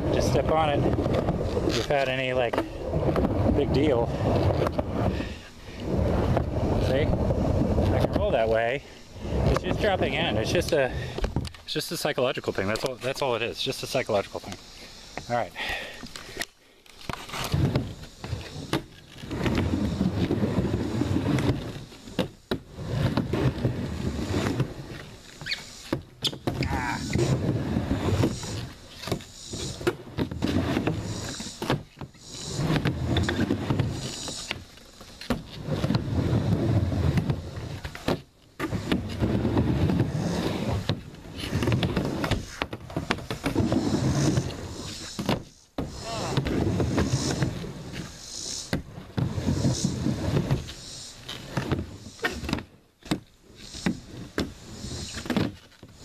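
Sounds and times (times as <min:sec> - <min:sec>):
skateboard wheels rolling on plywood: 0:00.0 - 0:56.0.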